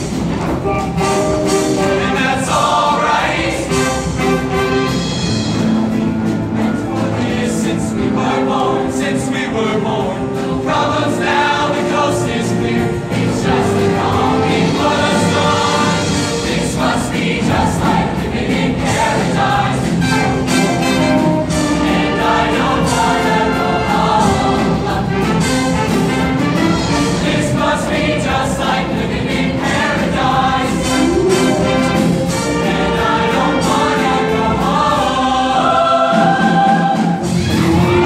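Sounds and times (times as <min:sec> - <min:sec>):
live band playing: 0:00.0 - 0:08.6, 0:11.9 - 0:29.2, 0:30.0 - 0:35.0, 0:36.4 - 0:38.0
choir singing: 0:00.0 - 0:38.0.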